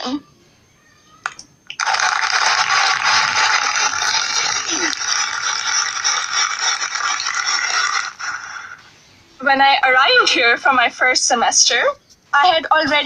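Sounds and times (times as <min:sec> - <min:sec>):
audience applauding: 0:01.7 - 0:08.8.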